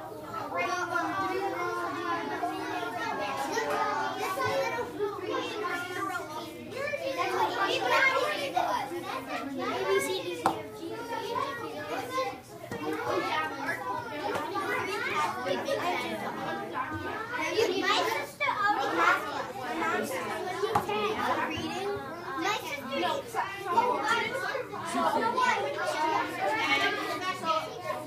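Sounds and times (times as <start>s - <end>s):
children chattering: 0.0s - 28.0s.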